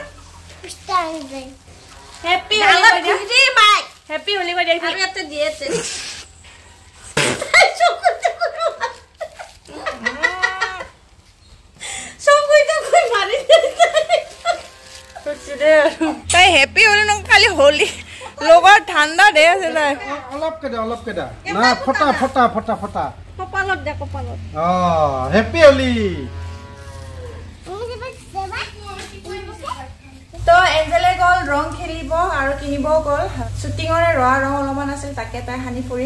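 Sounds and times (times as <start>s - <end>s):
breathy hiss: 5.6s - 7.5s
woman's whining cry: 9.7s - 11.0s.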